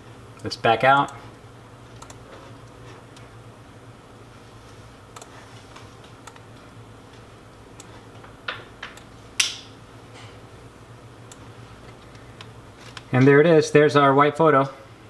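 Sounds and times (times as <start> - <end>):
keyboard clicks: 2.0 - 2.2
computer mouse clicks: 2.0 - 3.2, 5.1 - 6.5.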